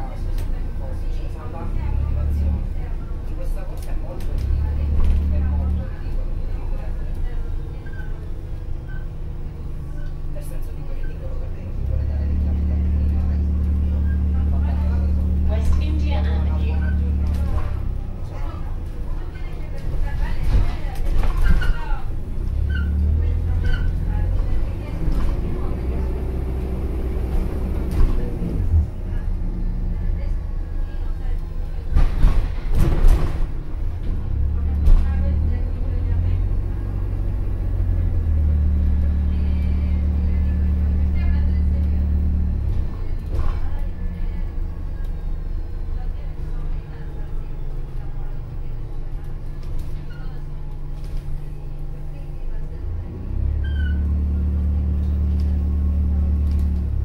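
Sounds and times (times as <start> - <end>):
bus engine drone: 0.0 - 57.0.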